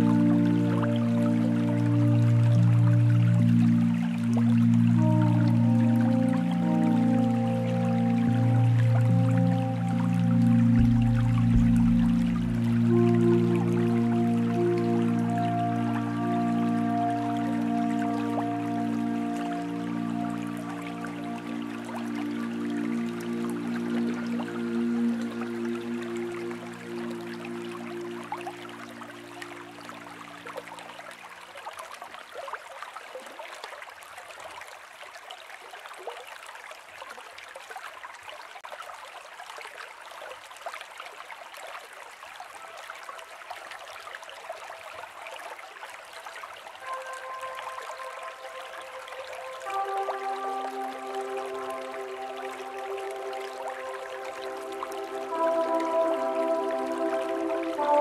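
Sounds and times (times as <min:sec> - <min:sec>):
slow ambient music: 0:00.0 - 0:31.2, 0:46.6 - 0:58.0
water trickling and gurgling: 0:00.0 - 0:58.0.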